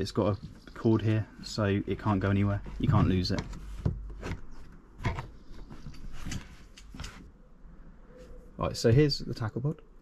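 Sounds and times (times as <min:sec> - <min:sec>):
faint handling noise: 0:00.0 - 0:07.4.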